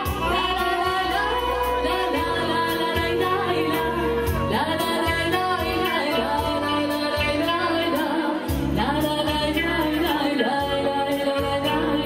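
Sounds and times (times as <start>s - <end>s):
bass notes: 0.0s - 12.0s
electric guitar: 0.0s - 12.0s
keyboard: 0.0s - 12.0s
woman singing: 0.0s - 12.0s.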